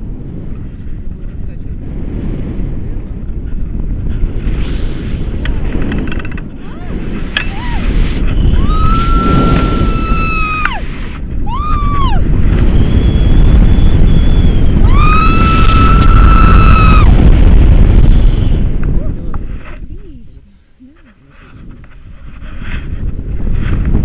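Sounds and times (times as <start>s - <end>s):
wind rushing over microphone: 0.0s - 24.0s
woman screaming: 8.6s - 10.8s, 11.4s - 12.2s, 14.9s - 17.1s.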